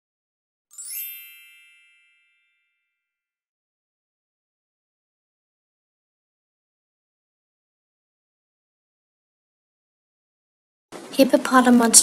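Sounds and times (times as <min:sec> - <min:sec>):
bright chime ringing: 0:00.7 - 0:03.2.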